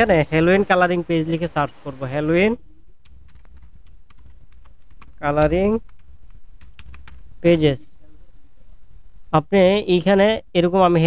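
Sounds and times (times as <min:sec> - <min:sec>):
steady low hum: 0:00.0 - 0:11.0
computer keyboard typing: 0:03.0 - 0:07.2.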